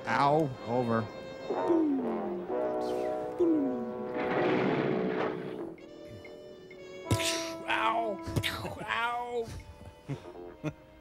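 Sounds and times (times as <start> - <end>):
held orchestral chord: 0.1 - 9.4.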